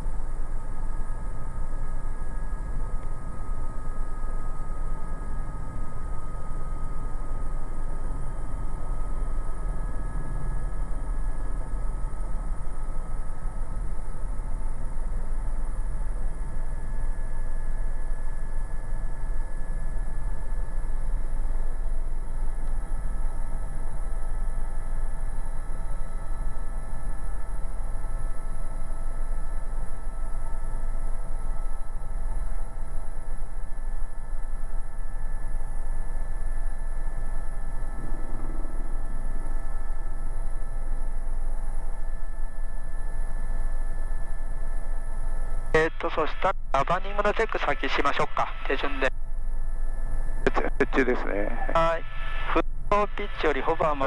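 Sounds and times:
helicopter rotor rumble: 0.0 - 54.0
turbine whine: 0.0 - 54.0.

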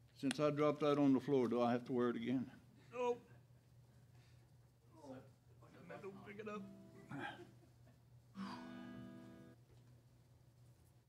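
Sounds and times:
acoustic guitar chord strummed: 6.4 - 7.3, 8.4 - 9.6.

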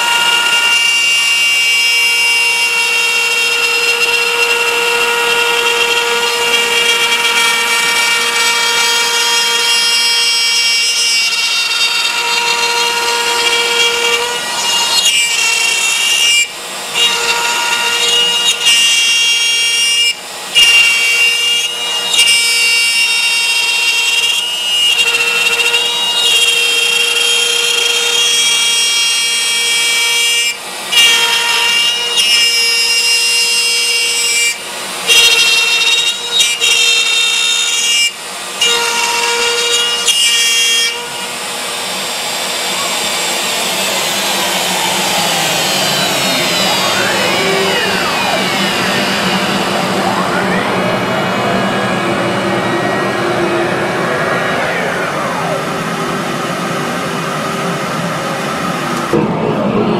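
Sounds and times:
router spindle whine cutting wood: 0.0 - 59.9
rushing noise with sweeping tones: 41.6 - 59.9.

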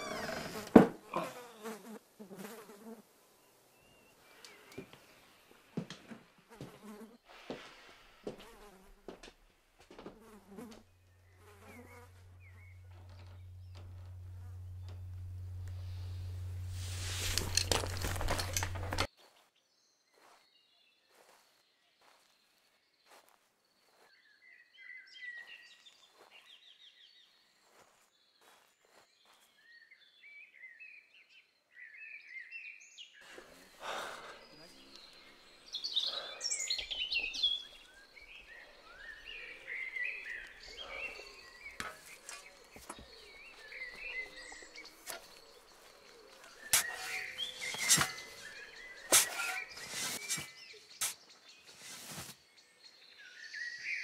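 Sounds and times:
flies buzzing: 0.0 - 3.1, 10.0 - 19.1, 37.2 - 51.2
small birds chirping: 0.0 - 7.1, 10.0 - 54.0
outdoor background hiss: 0.0 - 19.1, 33.2 - 53.5
steady low hum: 12.0 - 19.1.

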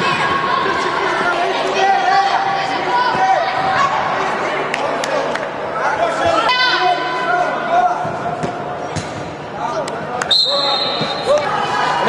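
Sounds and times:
referee's whistle: 10.3 - 11.4.

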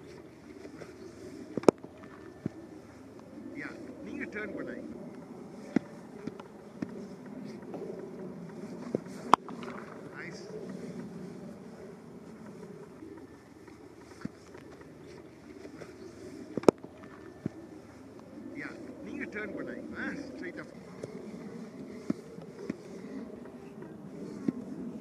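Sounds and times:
wind rumbling on microphone: 0.0 - 25.0.

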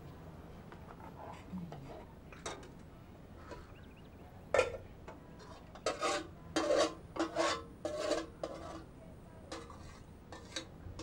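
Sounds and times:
metal utensil scraping pot: 5.4 - 8.9, 9.5 - 10.7.

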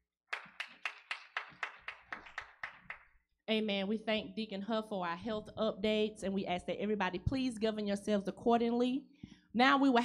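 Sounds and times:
hand clapping: 0.3 - 3.2.

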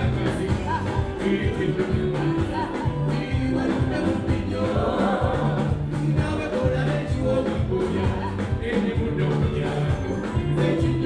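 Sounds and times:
bass line: 0.0 - 11.0
conga drums: 0.0 - 11.0
drum beat: 0.0 - 11.0
electric guitar: 0.0 - 11.0
group vocals: 0.0 - 11.0
man singing lead vocals: 0.0 - 11.0.

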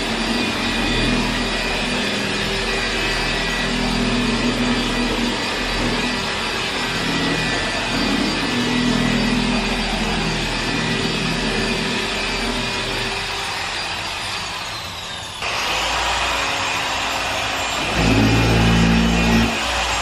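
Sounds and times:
paint polisher whirring: 0.0 - 20.0.

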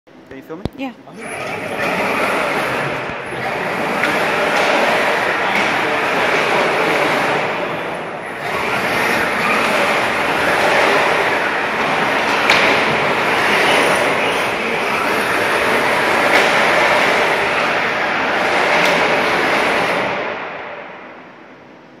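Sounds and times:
robot drive motors running: 1.1 - 20.2.

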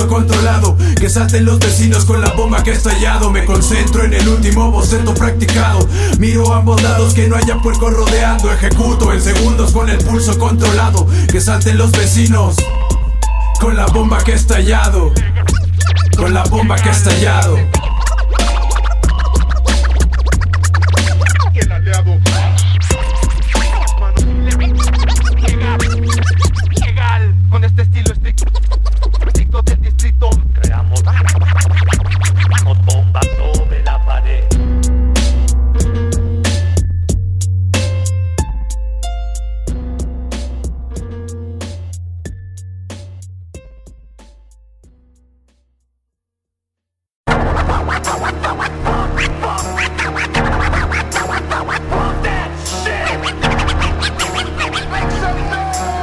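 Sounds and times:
turntable scratching: 0.0 - 12.6, 13.6 - 33.8, 47.3 - 56.0
bass line: 0.0 - 45.6, 47.3 - 56.0
hip hop beat: 0.0 - 45.6, 47.3 - 56.0.

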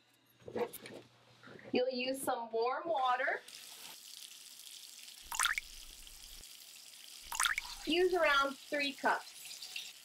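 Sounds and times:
water splashing into bowl: 5.2 - 6.2, 7.3 - 8.0.

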